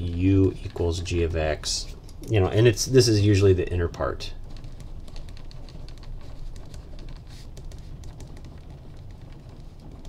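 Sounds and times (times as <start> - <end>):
pen scratching on paper: 4.6 - 8.6.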